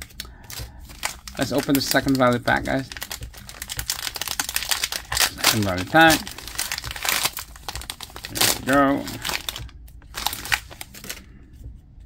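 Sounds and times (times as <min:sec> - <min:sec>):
plastic wrapper crinkling: 0:00.0 - 0:11.3.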